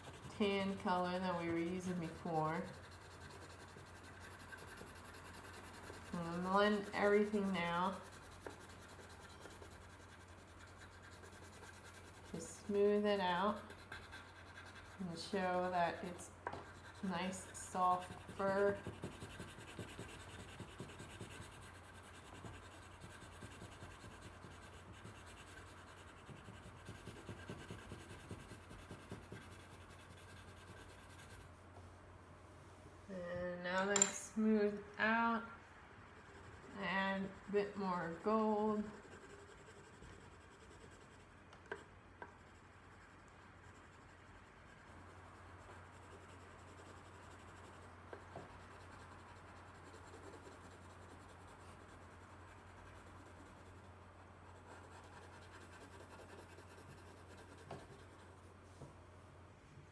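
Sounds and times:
colored pencil rubbing on paper: 0.0s - 31.5s, 36.1s - 58.5s
steady low hum: 0.0s - 59.9s.

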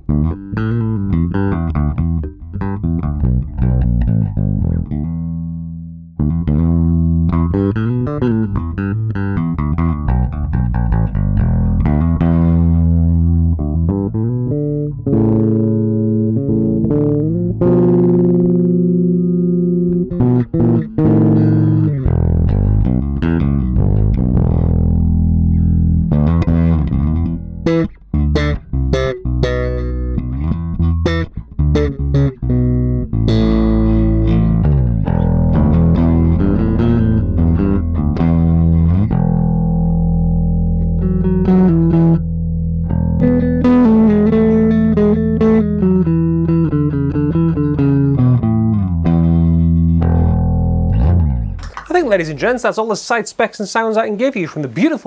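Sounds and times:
electric bass plucked notes: 0.0s - 52.9s.

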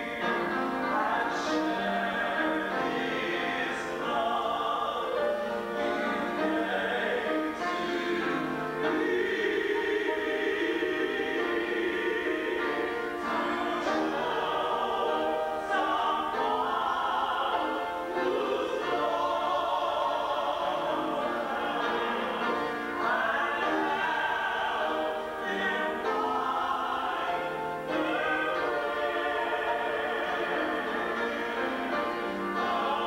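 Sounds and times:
voices singing a hymn: 0.0s - 33.0s.

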